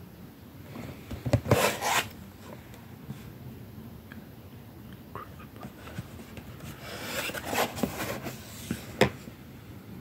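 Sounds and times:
cardboard scraping: 0:01.3 - 0:02.2, 0:05.8 - 0:09.1.

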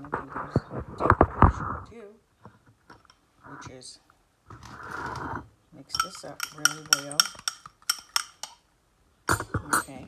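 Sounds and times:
metal fork clinking glass bowl: 0:06.0 - 0:08.6.

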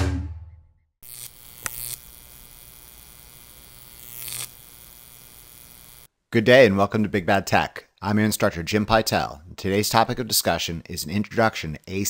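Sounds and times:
electric arc buzzing: 0:01.0 - 0:06.1
sharp electric snap: 0:01.0 - 0:06.1
steady electrical hum: 0:01.0 - 0:06.1.

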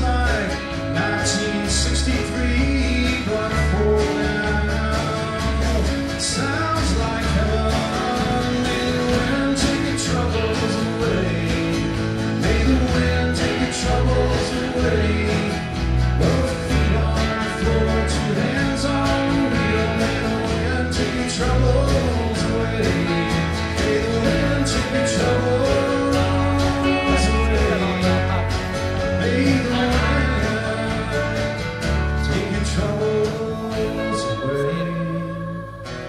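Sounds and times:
bass guitar: 0:00.0 - 0:36.0
country-rock band playing: 0:00.0 - 0:36.0
drums: 0:00.0 - 0:36.0
electric guitar: 0:00.0 - 0:36.0
strummed acoustic guitars: 0:00.0 - 0:36.0.

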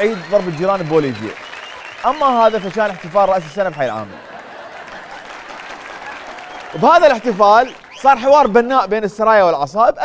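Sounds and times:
audience applauding: 0:00.0 - 0:08.8.

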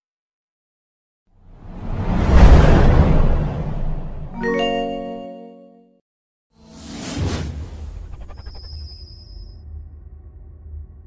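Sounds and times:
low rumble: 0:01.4 - 0:04.4
whoosh sound effect: 0:01.6 - 0:04.8.

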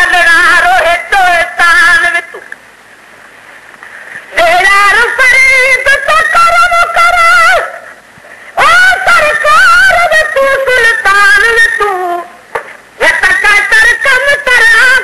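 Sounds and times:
man singing devotional song: 0:00.0 - 0:02.5, 0:04.1 - 0:15.0.

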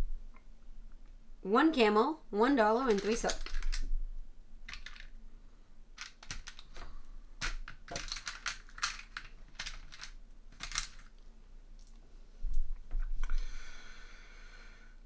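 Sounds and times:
game pieces clicking in plastic tray: 0:02.8 - 0:03.8, 0:04.7 - 0:05.1, 0:06.0 - 0:11.1.

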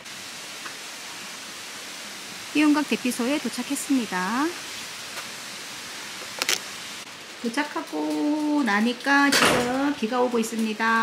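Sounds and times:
steady rain falling: 0:00.0 - 0:11.0.

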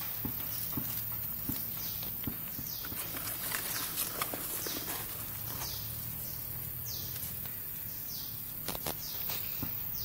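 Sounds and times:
hand scraping through dry leaves: 0:02.9 - 0:05.8
small crackles and snaps: 0:08.6 - 0:09.8.

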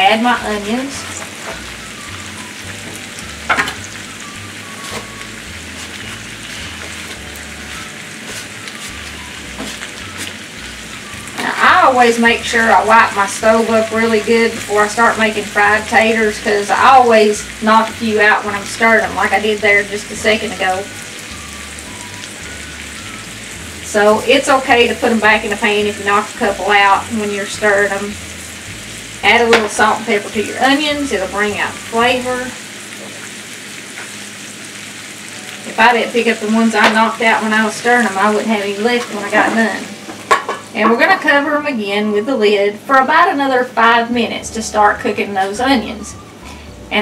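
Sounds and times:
potatoes sizzling in oil: 0:00.0 - 0:47.0.

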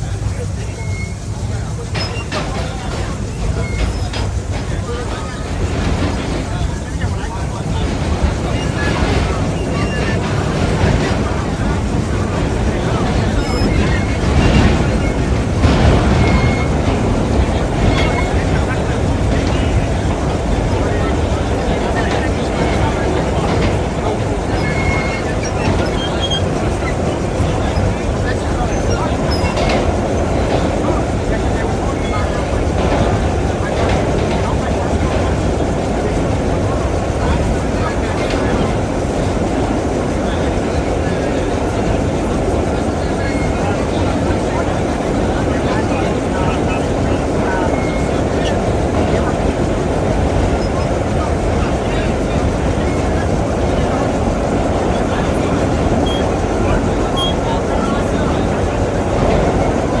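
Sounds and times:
subway car wheels rumbling on rails: 0:00.0 - 1:00.0.

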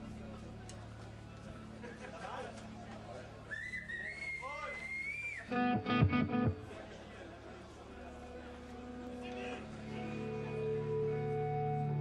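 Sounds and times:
electric guitar whistle-like tone: 0:03.5 - 0:06.4.

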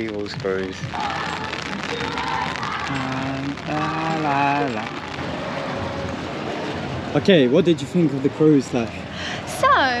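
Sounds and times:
rain-like hiss: 0:00.0 - 0:10.0.

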